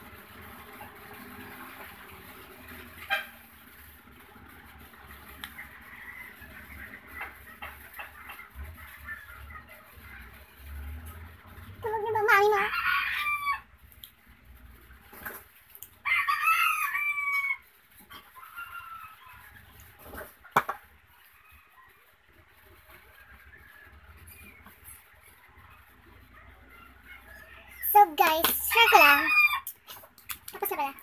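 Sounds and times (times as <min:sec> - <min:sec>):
rooster crowing: 0:12.5 - 0:13.7, 0:16.0 - 0:17.6, 0:28.7 - 0:29.7.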